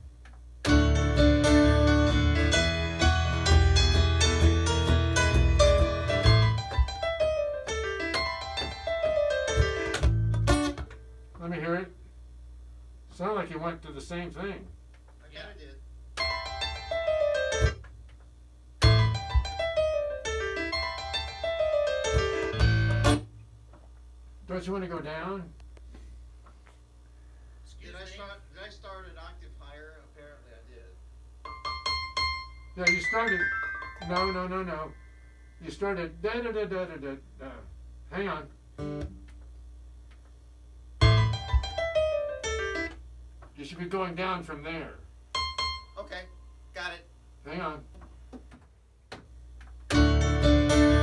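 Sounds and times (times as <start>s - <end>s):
piano playing: 0.6s - 11.0s, 16.2s - 17.9s, 18.8s - 23.3s, 31.4s - 35.6s, 41.0s - 43.0s, 45.3s - 46.1s, 49.9s - 51.0s.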